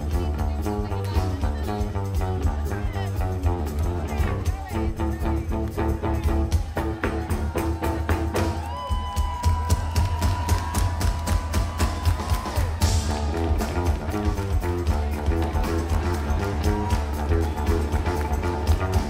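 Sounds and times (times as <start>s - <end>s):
electric bass guitar solo: 0.0s - 8.8s, 12.8s - 19.0s
steady beat: 0.0s - 19.0s.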